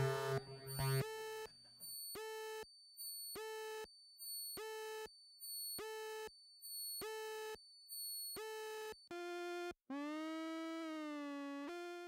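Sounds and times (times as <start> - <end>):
buzzy electronic beeps: 0.0 - 1.2.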